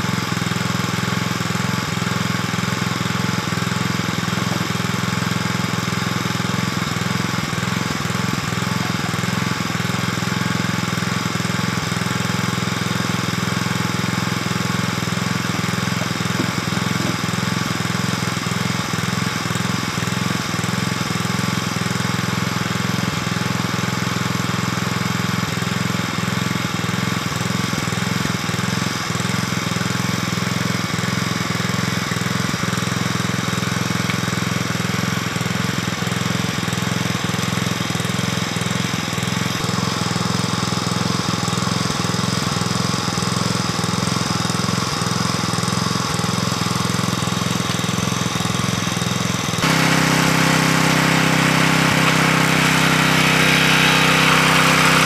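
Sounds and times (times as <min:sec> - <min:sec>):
small engine running steadily: 0:00.0 - 0:55.0.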